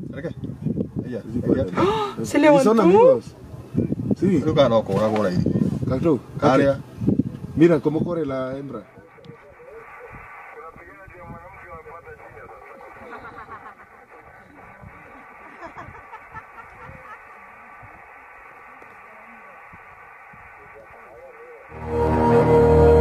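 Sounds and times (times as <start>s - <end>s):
muffled voices talking: 0.1s - 16.0s, 16.6s - 21.8s
low rumbling noise: 5.4s - 23.0s.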